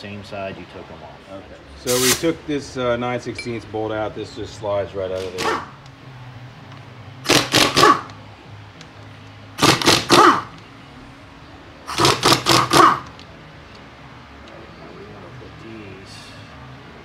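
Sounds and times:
impact wrench hammering: 0:07.2 - 0:08.1, 0:09.6 - 0:10.6, 0:11.9 - 0:13.2.

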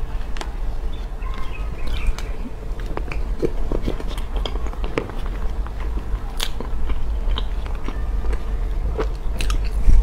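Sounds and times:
chewing sticky cake: 0:00.0 - 0:10.0
steady low hum: 0:00.0 - 0:10.0.

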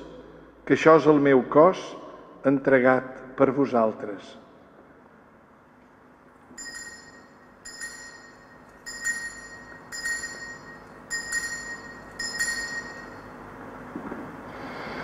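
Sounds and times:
metallic ringing strikes: 0:06.6 - 0:13.6.

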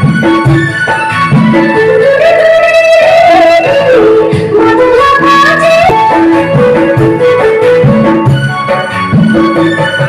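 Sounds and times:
folk dance music: 0:00.0 - 0:10.0
drum beating: 0:05.0 - 0:10.0.

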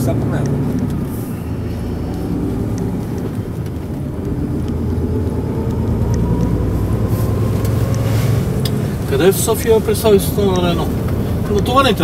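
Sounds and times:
truck diesel engine drone: 0:00.0 - 0:12.0.

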